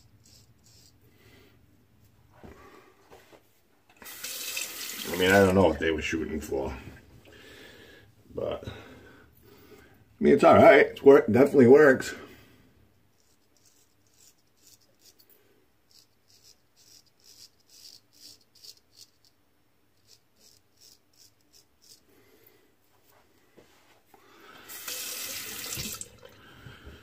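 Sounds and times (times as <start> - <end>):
straight razor scraping stubble: 0.0 - 1.0, 13.2 - 15.3, 15.9 - 19.4, 20.0 - 22.1
water tap running: 4.0 - 5.8, 24.7 - 26.8.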